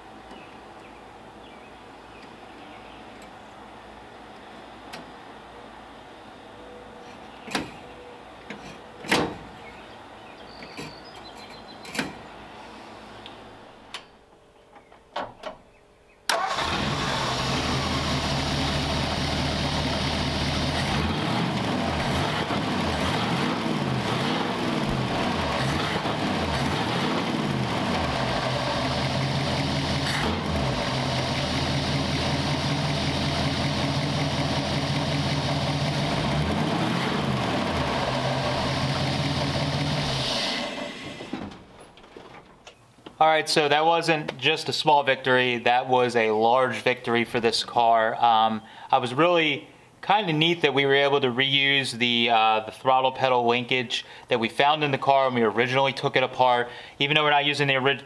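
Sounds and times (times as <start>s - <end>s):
engine idling with throttle blips: 16.3s - 41.3s
car engine starting: 16.3s - 41.7s.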